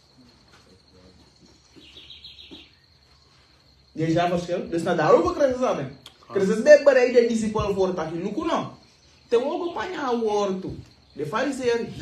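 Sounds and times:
faint low murmur: 0.0 - 1.8.

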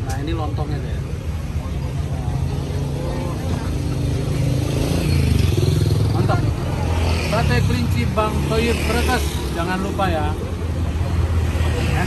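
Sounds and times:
motorcycle engines running: 0.0 - 12.0
street traffic: 0.0 - 12.0.

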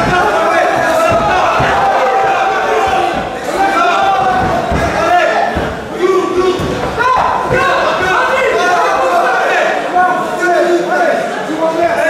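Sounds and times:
crowd shouting and yelling: 0.0 - 12.0.

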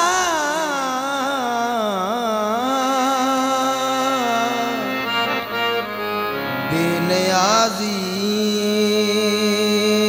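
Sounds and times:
harmonium drone: 0.0 - 10.0.

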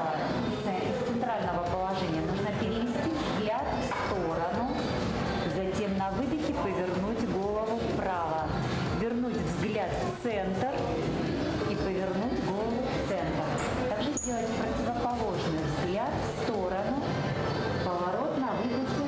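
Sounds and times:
woman talking: 0.0 - 4.8, 5.4 - 11.0, 11.6 - 17.1, 17.8 - 19.0
background music: 0.0 - 19.0.

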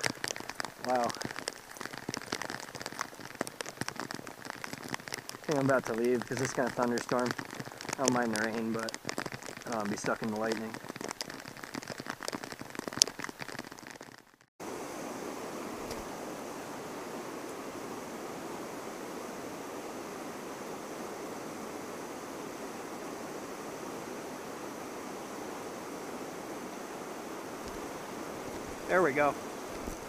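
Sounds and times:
rain pattering: 0.0 - 30.0
river water pouring over dam: 0.0 - 30.0.

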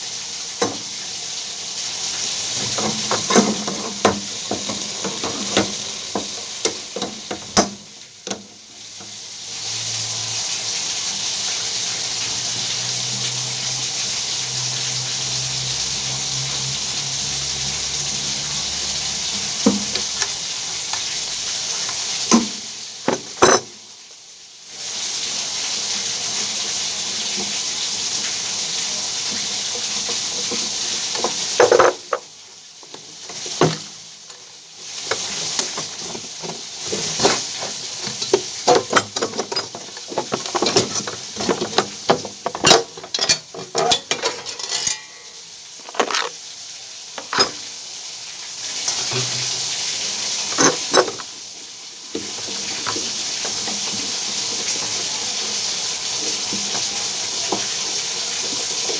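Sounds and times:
steady hiss: 0.0 - 58.9
metal plumbing fittings clicking: 36.9 - 45.2.

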